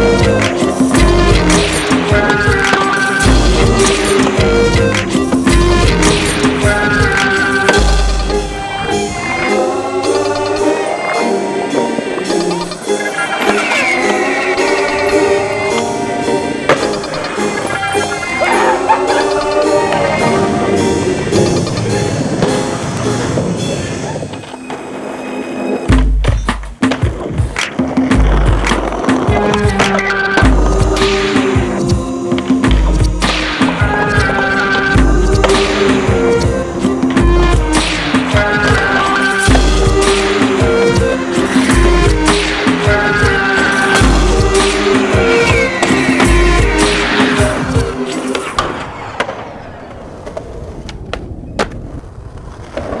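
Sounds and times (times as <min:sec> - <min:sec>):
loud music with steady beat: 0:00.0 - 0:08.8, 0:25.9 - 0:48.4
skateboard wheels rolling on pavement: 0:00.0 - 0:53.0
skateboard clacks: 0:00.3 - 0:05.2, 0:26.0 - 0:31.2.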